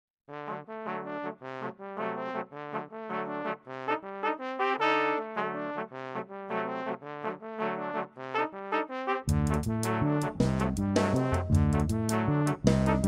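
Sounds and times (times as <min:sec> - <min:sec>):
brass quartet playing chords: 0:00.3 - 0:13.0.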